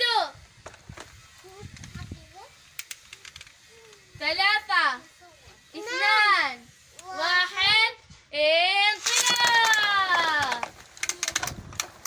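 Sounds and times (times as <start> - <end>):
faint children's voices: 1.0 - 4.2
sharp plastic clicks: 2.7 - 4.1, 9.0 - 12.0.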